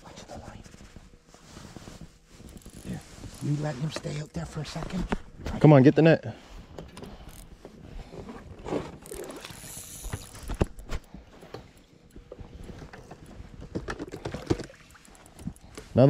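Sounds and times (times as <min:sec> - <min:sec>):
fishing reel cranking: 0:02.5 - 0:03.6, 0:07.0 - 0:07.5, 0:09.0 - 0:11.8, 0:14.6 - 0:15.8.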